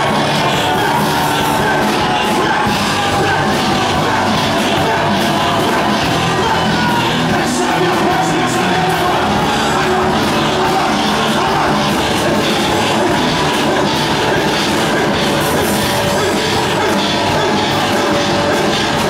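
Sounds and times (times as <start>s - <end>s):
live band with electric guitar: 0.0s - 19.0s
people singing and shouting: 0.0s - 19.0s.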